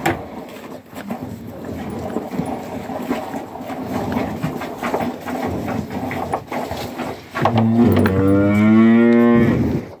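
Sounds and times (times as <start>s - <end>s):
cow mooing: 7.6s - 9.7s.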